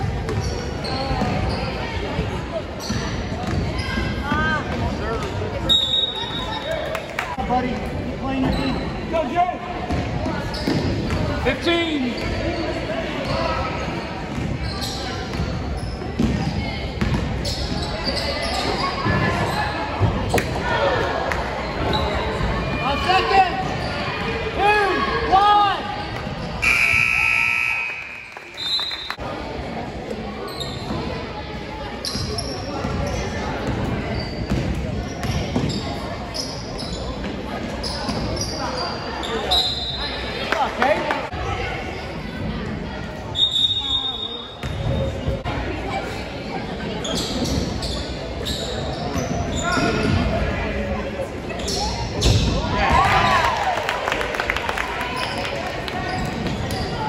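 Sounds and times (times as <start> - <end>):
voices of players and spectators: 0.0 - 57.0
basketball bouncing on court: 16.2 - 17.5.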